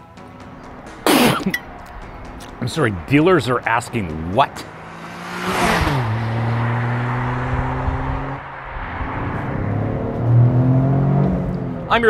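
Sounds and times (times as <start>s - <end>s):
car engine accelerating: 0.1s - 12.0s.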